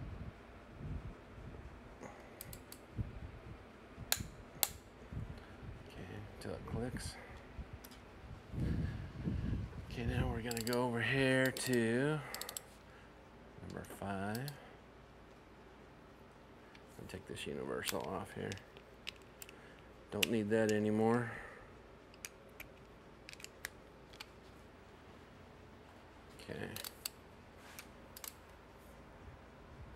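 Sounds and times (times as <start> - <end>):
metallic clicks of socket tools: 2.4 - 2.8, 10.5 - 10.8, 11.4 - 12.7, 17.8 - 19.6, 22.1 - 24.3, 26.7 - 27.2, 28.2 - 28.4
torque wrench clicks: 10.4 - 10.8, 11.4 - 12.7.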